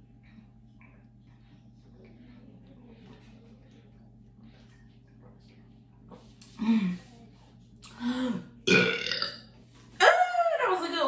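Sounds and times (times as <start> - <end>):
woman burping loudly: 8.6 - 9.4.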